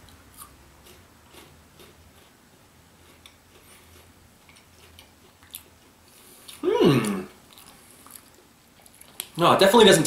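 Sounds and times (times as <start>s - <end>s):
person chewing quietly: 0.0s - 9.4s
low room hum: 0.0s - 10.0s.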